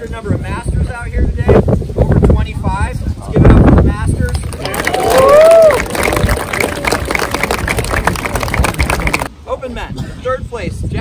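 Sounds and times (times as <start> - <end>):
crowd applauding: 4.3 - 9.3.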